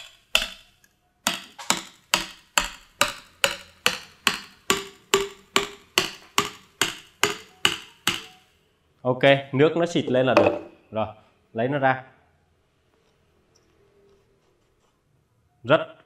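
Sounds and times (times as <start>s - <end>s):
hammer knocking on steel tube: 0.0s - 8.4s.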